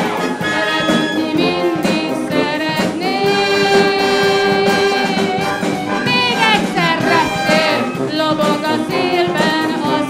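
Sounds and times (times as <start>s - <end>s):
children's choir singing: 0.0s - 10.0s
wind band playing: 0.0s - 10.0s.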